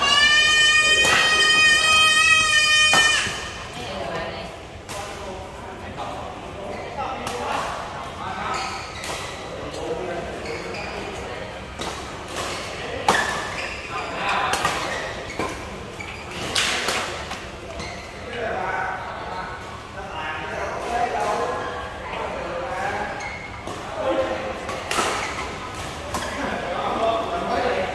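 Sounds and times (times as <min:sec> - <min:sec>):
players' voices: 0:00.0 - 0:27.9.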